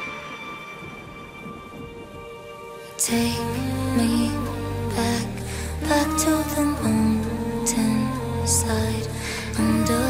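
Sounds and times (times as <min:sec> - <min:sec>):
background song: 0:00.0 - 0:10.0
low rumbling noise: 0:00.0 - 0:10.0.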